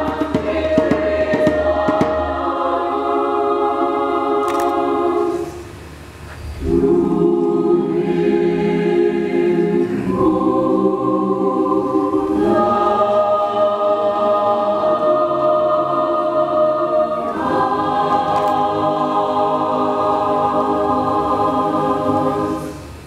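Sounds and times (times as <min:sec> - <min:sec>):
mixed choir singing chords: 0:00.0 - 0:23.0.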